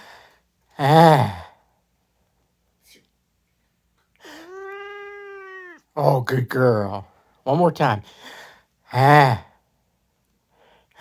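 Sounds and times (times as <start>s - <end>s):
cat meowing: 4.3s - 5.9s.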